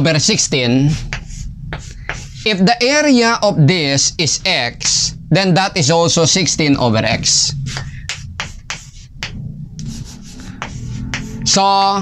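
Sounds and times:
chalk scraping on chalkboard: 0.8 - 2.7, 7.6 - 12.0.

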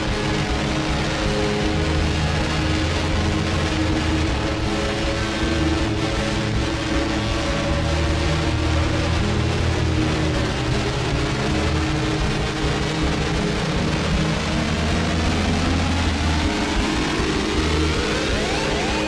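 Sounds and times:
distorted low drone: 0.0 - 19.0.

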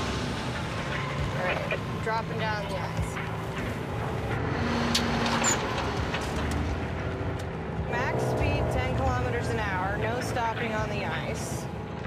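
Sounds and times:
road and wind noise: 0.0 - 12.0
truck engine running: 0.0 - 12.0.

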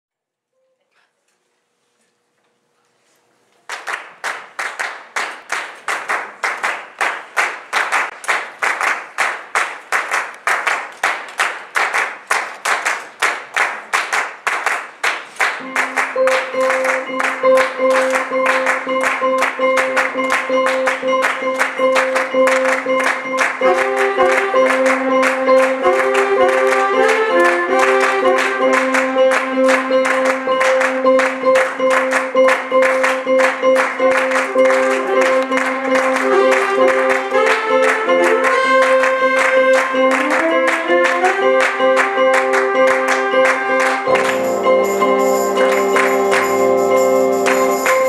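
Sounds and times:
rhythmic handclapping: 3.6 - 48.0
jazz chords and melody: 15.6 - 48.0.

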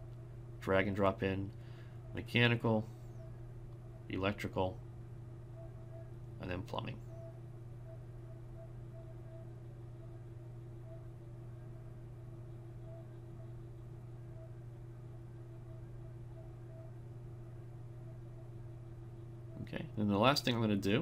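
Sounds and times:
low electrical hum: 0.0 - 21.0.

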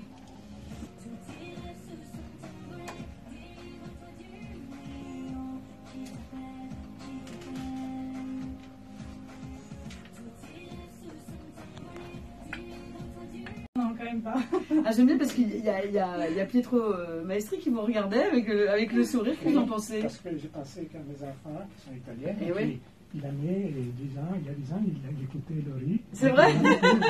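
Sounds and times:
recorded song playing: 0.0 - 14.5, 26.2 - 27.0.

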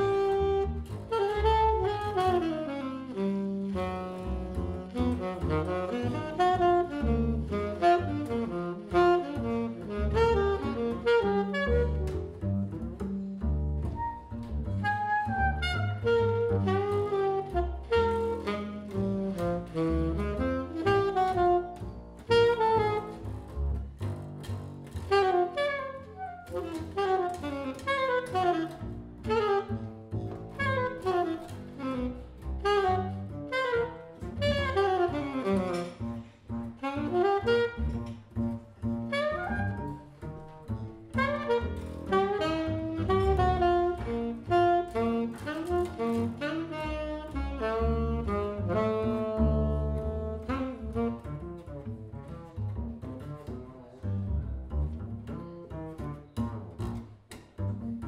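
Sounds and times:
jazz saxophone: 0.0 - 58.0
plucked double bass walking line: 0.0 - 58.0.

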